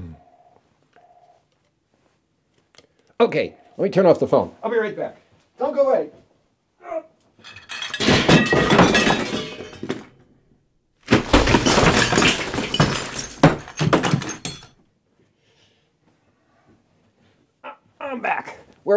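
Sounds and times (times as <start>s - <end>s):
glass shattering: 7.4s - 10.2s, 11.1s - 14.8s
things crashing and breaking: 7.4s - 10.2s, 11.0s - 14.8s.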